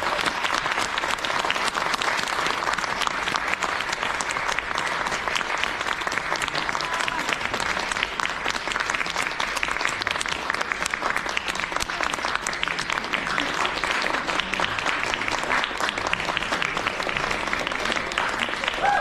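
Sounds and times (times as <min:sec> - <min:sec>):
audience applauding: 0:00.0 - 0:19.0.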